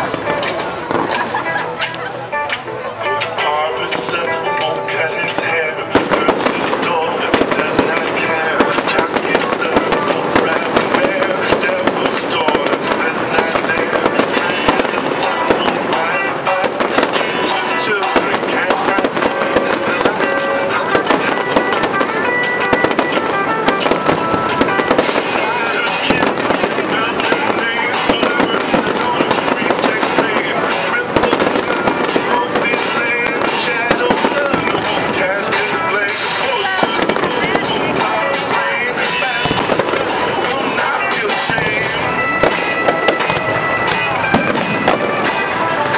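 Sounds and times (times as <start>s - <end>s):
fireworks bangs and crackles: 0.0s - 45.9s
music playing: 0.0s - 45.9s.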